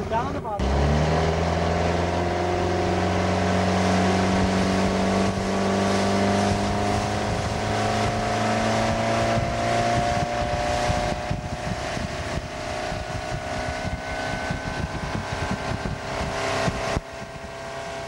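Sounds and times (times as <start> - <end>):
boat motor running: 0.0 - 18.0
water and wind rushing: 0.0 - 18.0.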